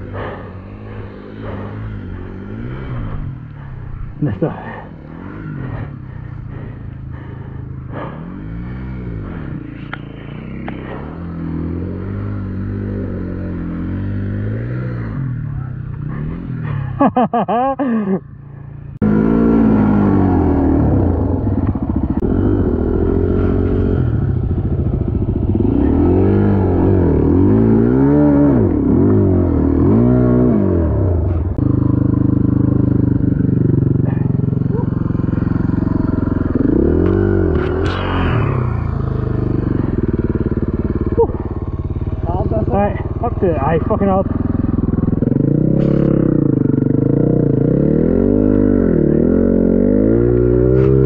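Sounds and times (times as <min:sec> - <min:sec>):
dirt bike engine revving: 0:00.0 - 0:17.7, 0:18.9 - 0:51.0.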